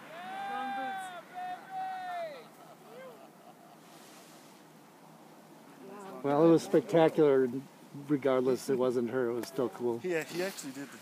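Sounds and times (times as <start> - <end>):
light wind hiss: 0.0 - 11.0.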